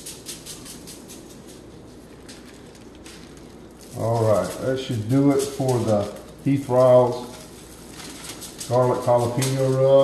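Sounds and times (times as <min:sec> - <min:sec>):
spice shaker shaking: 0:00.0 - 0:06.3.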